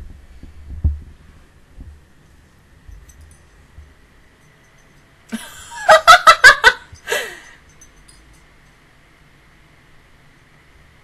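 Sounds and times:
microphone handling thumps: 0.0s - 2.0s.

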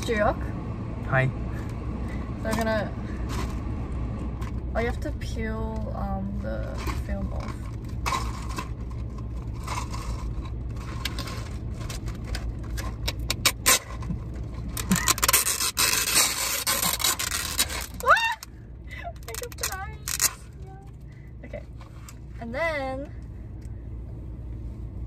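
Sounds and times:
plastic film crinkling: 14.6s - 18.5s, 19.2s - 20.5s
plastic film ripping: 14.7s - 18.5s, 19.2s - 20.5s.

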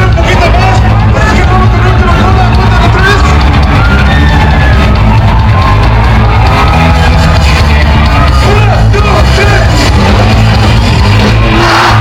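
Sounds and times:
live surf rock band: 0.0s - 11.9s
audience shouting: 0.0s - 12.0s.

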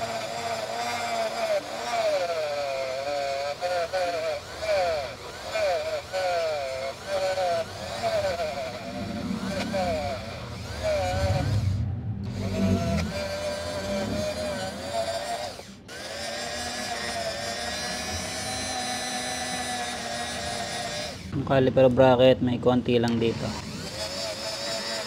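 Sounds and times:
rotary tool wire brush whining: 0.0s - 21.4s, 23.0s - 25.0s.

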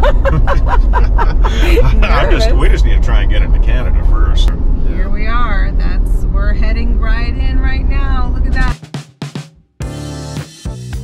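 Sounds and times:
vehicle road and engine rumble: 0.0s - 8.7s
person talking: 1.2s - 3.9s.

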